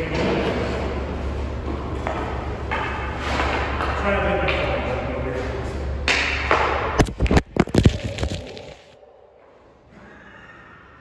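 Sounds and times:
puck smacking camera: 0:07.0 - 0:08.9.

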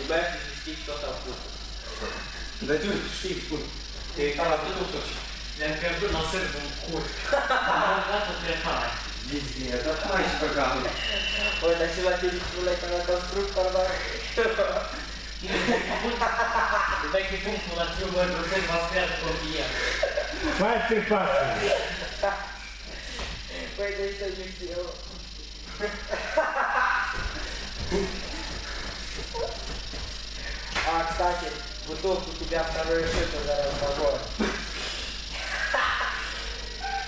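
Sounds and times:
steady low hum: 0:00.0 - 0:37.0
people talking: 0:02.6 - 0:22.0, 0:23.5 - 0:25.0, 0:30.8 - 0:34.5.

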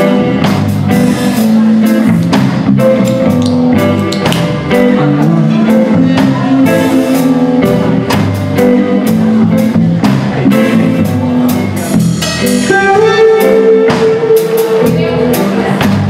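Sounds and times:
drum kit steady beat: 0:00.0 - 0:16.0
live blues band playing: 0:00.0 - 0:16.0.

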